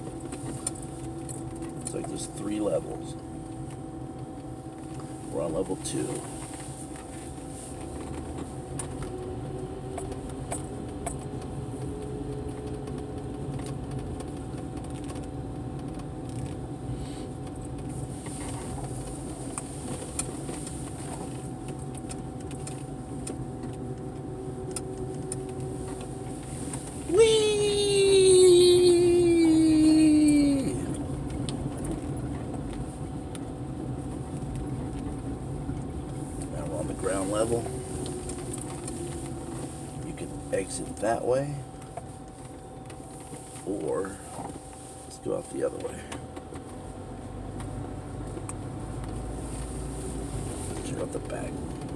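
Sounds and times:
car engine and road hum: 0.0 - 51.9.

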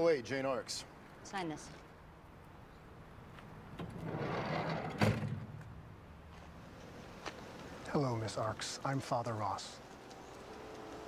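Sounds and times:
sliding van door rolling and slamming: 3.7 - 5.7.

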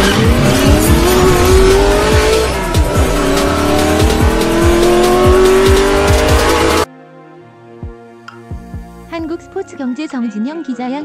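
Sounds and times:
electronic music with steady beat: 0.0 - 6.9
race car engine accelerating: 0.0 - 6.9.

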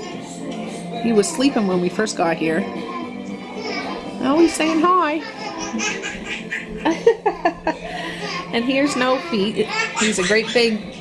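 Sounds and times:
people laughing: 5.2 - 8.5
voices talking: 7.9 - 11.0.

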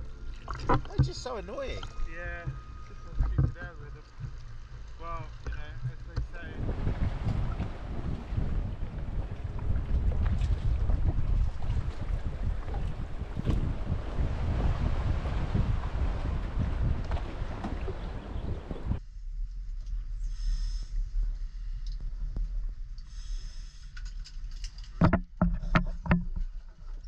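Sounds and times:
wind buffeting microphone: 0.0 - 19.0
rush of water: 3.2 - 19.0.

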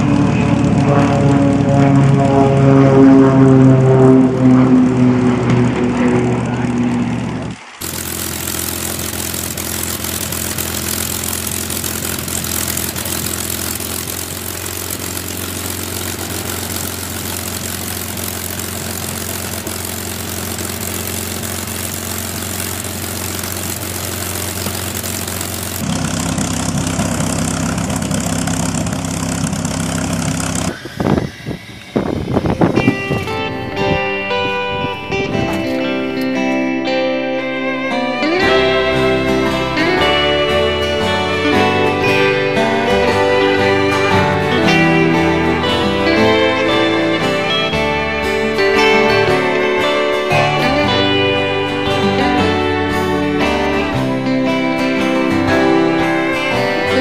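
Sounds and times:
engine and airflow drone in cockpit: 0.0 - 57.0
propeller plane engine running: 0.0 - 57.0.

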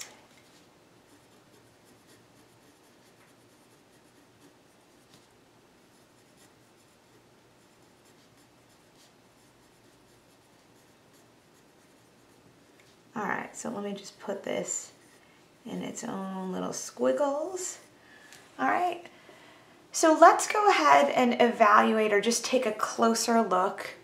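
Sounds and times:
pencil writing on paper: 1.0 - 12.4.

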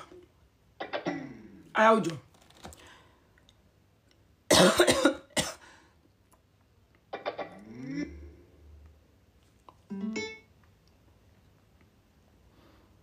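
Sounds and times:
woman making wordless voice sounds: 1.7 - 2.3
woman coughing: 4.5 - 5.6.

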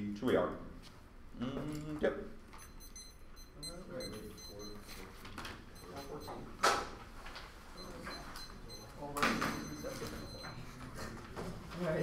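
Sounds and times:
electronic timer alarm beeping: 2.6 - 5.1, 5.7 - 6.6, 7.8 - 10.8.

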